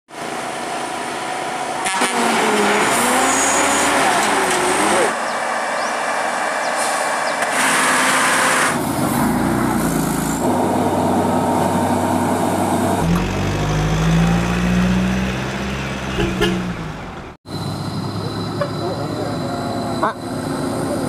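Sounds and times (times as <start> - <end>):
diesel lorry engines labouring: 0.1 - 21.0.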